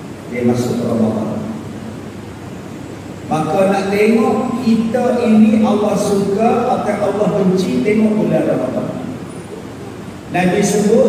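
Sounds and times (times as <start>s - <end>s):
steady hiss: 0.0s - 11.0s
man speaking: 0.3s - 1.6s, 3.3s - 9.2s, 10.3s - 11.0s.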